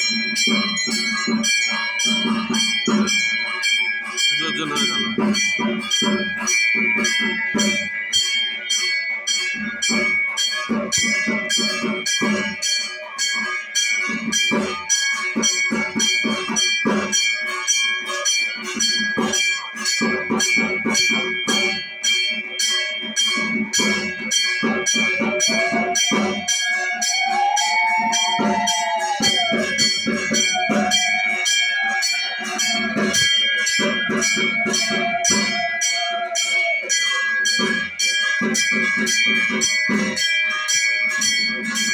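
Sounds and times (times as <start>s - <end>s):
hand bell ringing: 0.0s - 41.9s.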